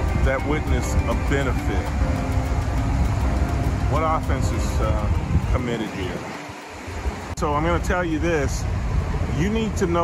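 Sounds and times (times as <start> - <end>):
city traffic rumbling: 0.0 - 10.0
wind buffeting microphone: 0.0 - 10.0.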